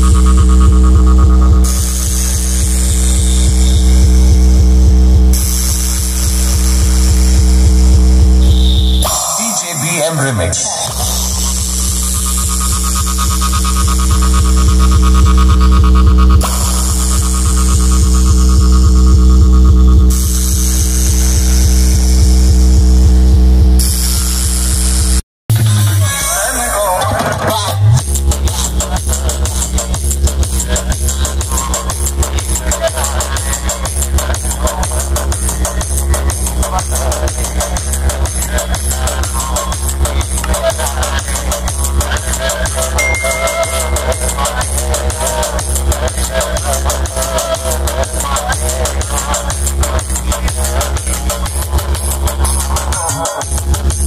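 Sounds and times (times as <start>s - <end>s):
electronic dance music: 0.0s - 22.2s, 25.5s - 54.0s.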